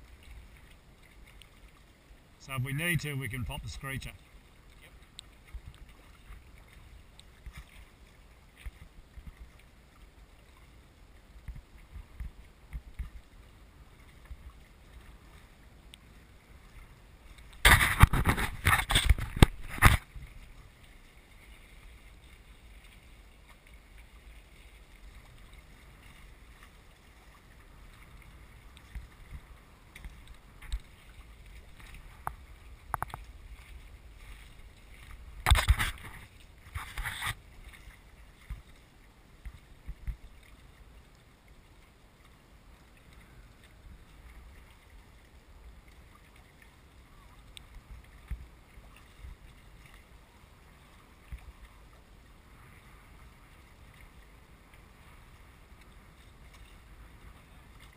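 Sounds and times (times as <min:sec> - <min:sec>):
water slapping against hull: 0:00.0 - 0:40.6, 0:42.9 - 0:51.9
water washing along hulls: 0:00.0 - 0:57.9.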